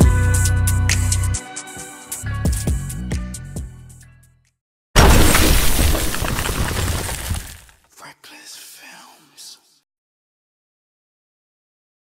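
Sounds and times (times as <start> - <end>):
glass crash: 5.0 - 7.7.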